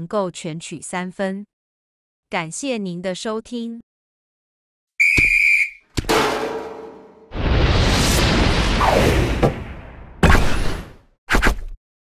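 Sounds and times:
whistle blast: 0:05.0 - 0:05.8
sharp hit: 0:06.1 - 0:09.8.

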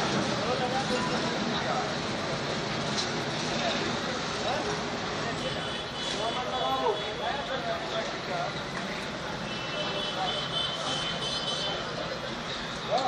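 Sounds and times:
workers' voices: 0:00.0 - 0:13.0.

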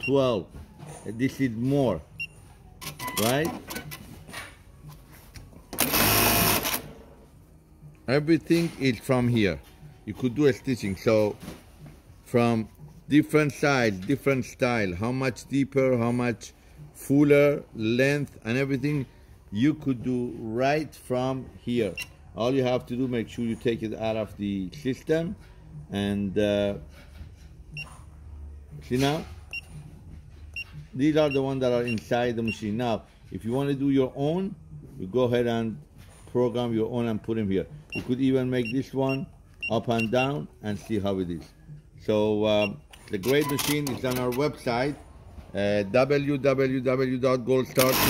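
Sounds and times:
sewing machine fast stitching: 0:47.8 - 0:48.0.

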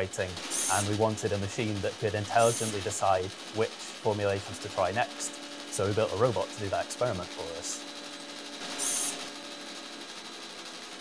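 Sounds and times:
motors whirring: 0:00.1 - 0:11.0.

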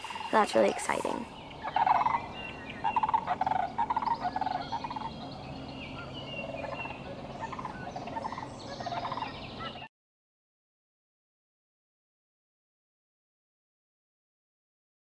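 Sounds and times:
cranes rattling calls: 0:00.0 - 0:09.9.

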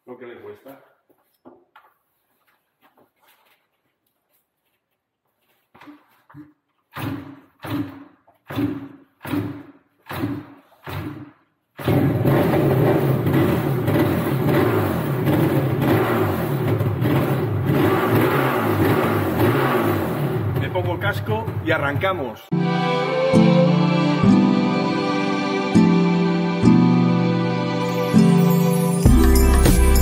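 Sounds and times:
motorcycle engine turning over: 0:11.8 - 0:21.8
motorcycle engine running: 0:11.9 - 0:21.6.

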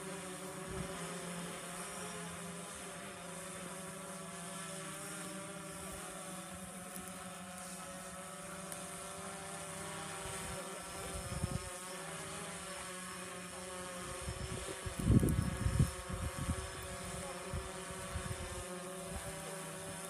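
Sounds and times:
motor-like drone: 0:00.0 - 0:20.0
wind rumbling on microphone: 0:11.1 - 0:11.7, 0:14.1 - 0:18.6.

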